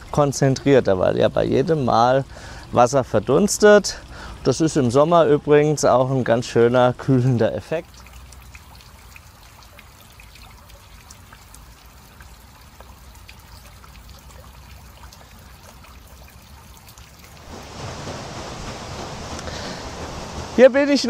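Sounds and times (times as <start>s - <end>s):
steady rushing water: 0.0s - 21.0s
water dripping and splashing: 0.0s - 21.0s.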